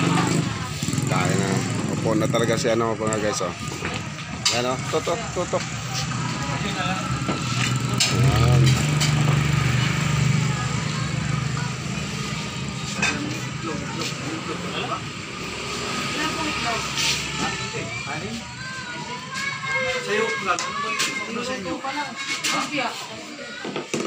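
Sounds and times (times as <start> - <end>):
people talking: 0.0 - 15.1, 15.9 - 23.8.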